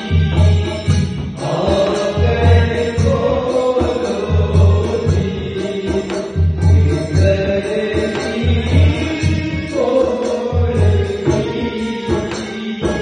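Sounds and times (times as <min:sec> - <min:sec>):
man singing into a microphone: 0:00.0 - 0:13.0.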